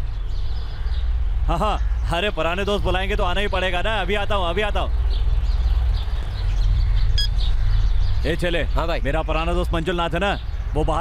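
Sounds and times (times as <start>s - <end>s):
faint bird chirps: 5.1s - 9.4s.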